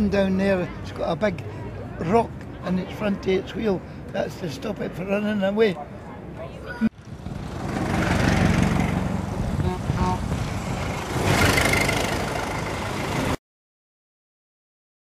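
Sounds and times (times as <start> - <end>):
road noise: 0.0 - 13.4.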